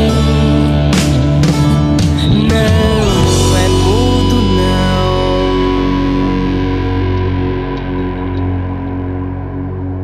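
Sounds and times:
electric guitar sustained notes: 0:00.0 - 0:10.0
steady bass: 0:00.0 - 0:10.0.

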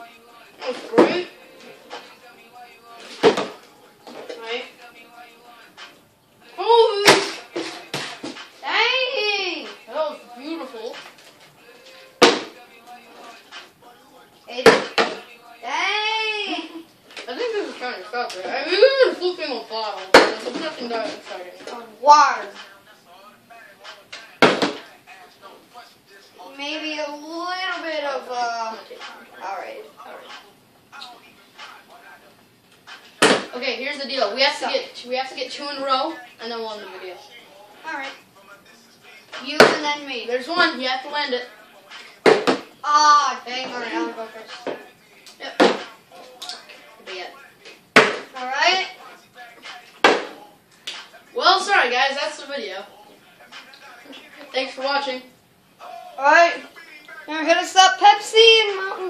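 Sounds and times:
plastic bottle thudding on wooden table: 0:24.4 - 0:24.8, 0:42.2 - 0:42.7.

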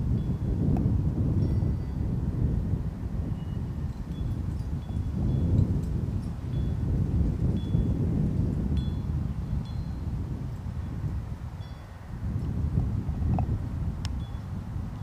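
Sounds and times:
wind buffeting microphone: 0:00.0 - 0:15.0
wind chime ringing: 0:01.4 - 0:02.1, 0:03.4 - 0:06.9, 0:09.6 - 0:10.1, 0:11.6 - 0:12.0.

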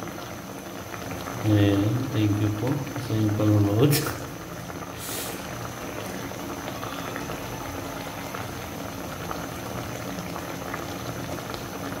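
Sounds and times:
fish simmering in a pan: 0:00.0 - 0:12.0.

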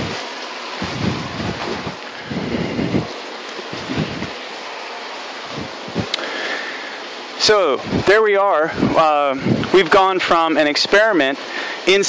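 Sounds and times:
microphone handling rumbles: 0:00.0 - 0:00.2, 0:00.8 - 0:04.4, 0:05.5 - 0:06.2, 0:07.8 - 0:10.4
wind rushing: 0:00.0 - 0:04.5, 0:05.4 - 0:06.2, 0:07.4 - 0:10.4.

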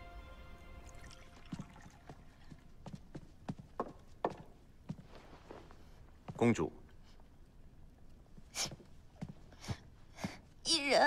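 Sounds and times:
footsteps on wooden floor: 0:01.4 - 0:06.6, 0:08.3 - 0:10.6.

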